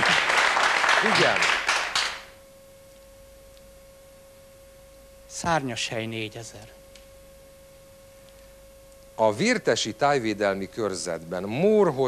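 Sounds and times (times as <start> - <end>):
faint high-pitched hum: 0.0 - 12.0
studio sound: 0.0 - 12.0.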